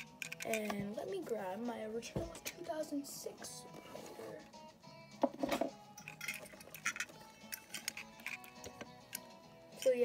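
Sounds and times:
toy cars clicking: 0:00.0 - 0:00.7, 0:06.0 - 0:10.0
quiet background music: 0:00.0 - 0:10.0.

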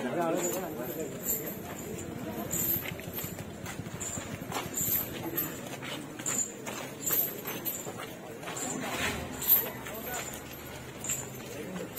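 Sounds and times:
elephant footsteps: 0:00.0 - 0:11.9.

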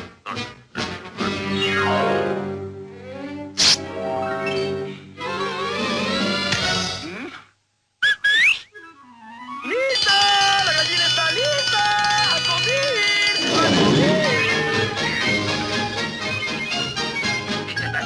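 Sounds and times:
dinner triangle ringing: 0:10.5 - 0:14.7
rising whistle: 0:13.4 - 0:14.9
cartoon orchestral music: 0:13.4 - 0:15.1.

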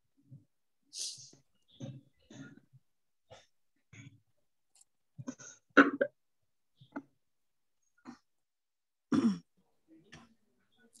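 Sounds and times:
person clearing throat: 0:09.1 - 0:09.5.

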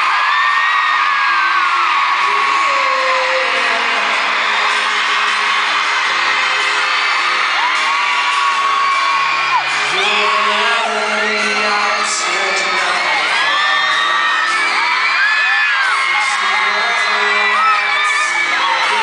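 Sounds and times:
crowd screaming: 0:00.0 - 0:19.0
live pop band music: 0:00.0 - 0:19.0.

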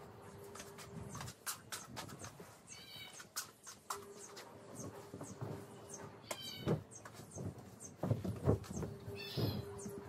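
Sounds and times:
fabric flapping and rustling: 0:07.1 - 0:10.0.

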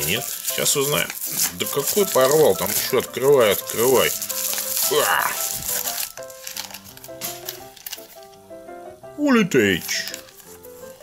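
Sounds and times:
plastic bag tearing and crinkling: 0:00.0 - 0:08.3, 0:09.7 - 0:11.0
background music: 0:00.0 - 0:11.0.

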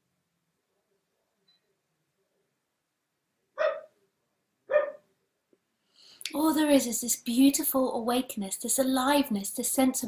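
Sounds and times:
small dog yapping: 0:03.6 - 0:03.9, 0:04.7 - 0:05.0.

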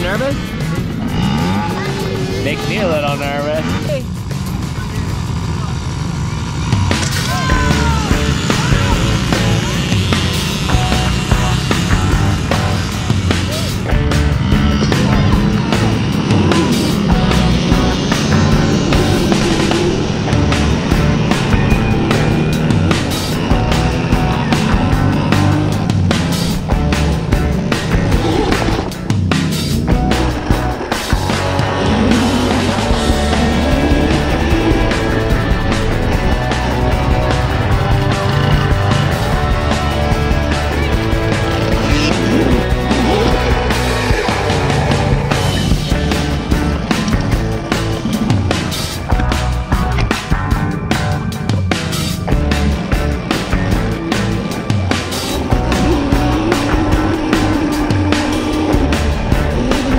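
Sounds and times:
dirt bikes revving and accelerating: 0:00.0 - 0:59.9
rock music with driving drums: 0:00.0 - 0:59.9.

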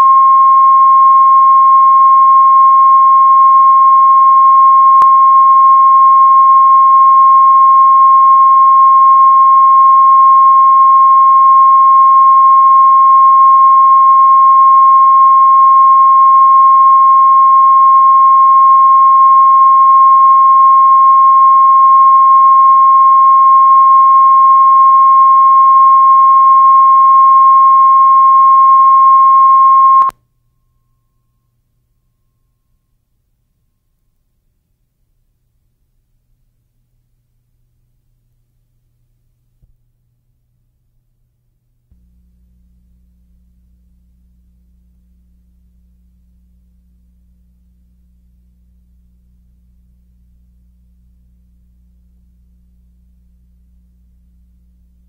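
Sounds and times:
faint low hum: 0:00.0 - 0:55.0.

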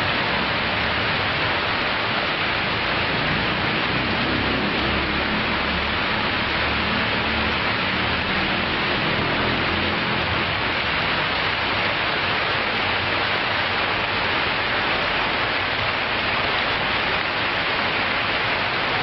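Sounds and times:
waterfall pouring and splashing: 0:00.0 - 0:19.0.

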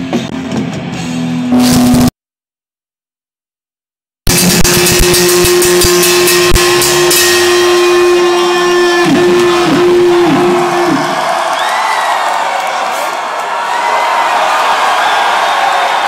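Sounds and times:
drum hits: 0:04.3 - 0:08.1
heavy metal band playing: 0:04.3 - 0:11.2
long held guitar note: 0:04.7 - 0:11.1.

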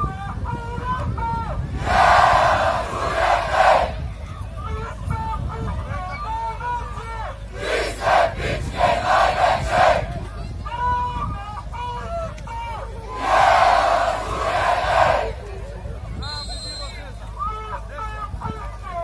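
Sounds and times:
crowd chanting: 0:01.8 - 0:04.0, 0:07.6 - 0:10.1, 0:13.1 - 0:15.4
massed shouting: 0:01.8 - 0:04.0, 0:07.6 - 0:10.1, 0:13.1 - 0:15.4.

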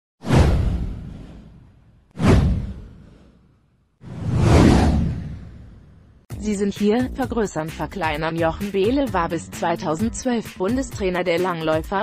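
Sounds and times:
whoosh: 0:00.2 - 0:06.3.

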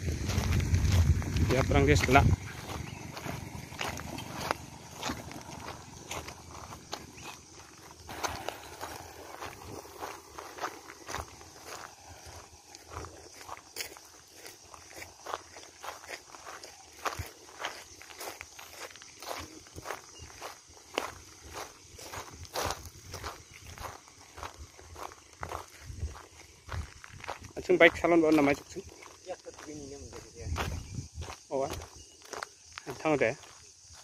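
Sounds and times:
footsteps crunching on gravel: 0:00.0 - 0:34.0.

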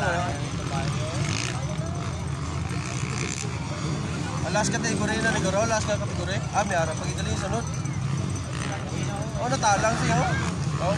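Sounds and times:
distant motocross bikes racing: 0:00.0 - 0:10.9
spectators' voices: 0:00.0 - 0:10.9.

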